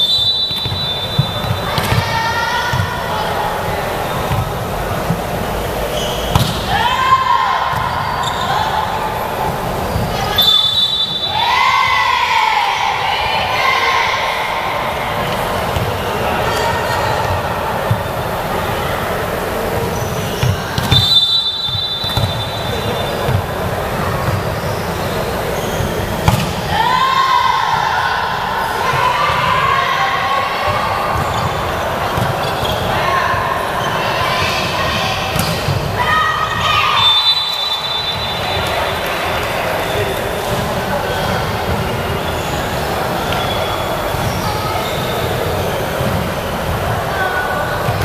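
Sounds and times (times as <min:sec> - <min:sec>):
referee's whistle: 0:00.0 - 0:02.0, 0:05.9 - 0:07.1, 0:10.3 - 0:11.6, 0:20.0 - 0:23.3, 0:36.5 - 0:39.0, 0:43.3 - 0:45.3
players shouting: 0:00.0 - 0:48.0.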